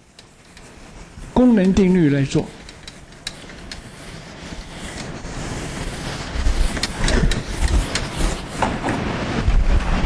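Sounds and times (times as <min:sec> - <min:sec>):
microphone rubbing and rustling: 0:04.3 - 0:10.0.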